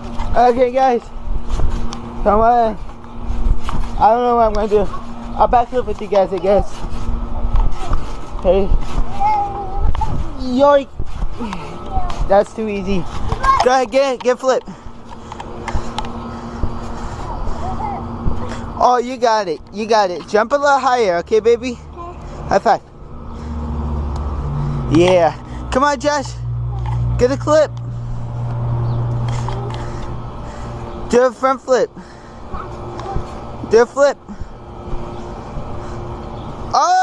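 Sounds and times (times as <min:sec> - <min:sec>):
child bouncing on trampoline: 0:00.0 - 0:22.8, 0:32.4 - 0:37.0
steady background noise: 0:00.0 - 0:37.0
child's faint voice: 0:09.1 - 0:10.4, 0:17.2 - 0:18.5, 0:21.9 - 0:22.3, 0:32.5 - 0:33.4.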